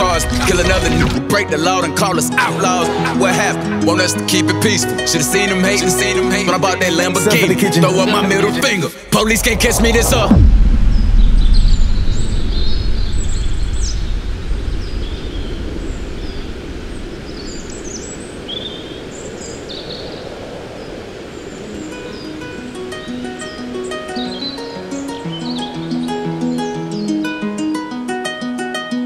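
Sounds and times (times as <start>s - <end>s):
plucked string melody: 0.0s - 8.8s, 22.5s - 29.0s
low rushing noise: 9.0s - 25.7s
birds chirping: 9.2s - 27.6s.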